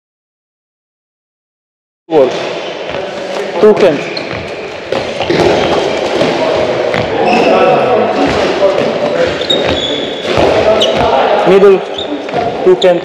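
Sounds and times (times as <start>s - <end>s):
voices: 2.2s - 13.0s.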